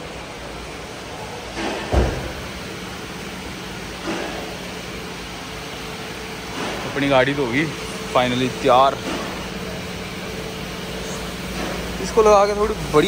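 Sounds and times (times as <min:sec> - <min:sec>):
heavy thump: 0:01.8 - 0:02.4.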